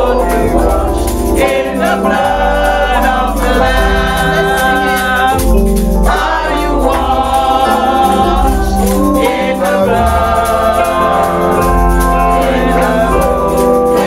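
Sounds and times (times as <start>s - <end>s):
instrumental accompaniment: 0.0s - 14.0s.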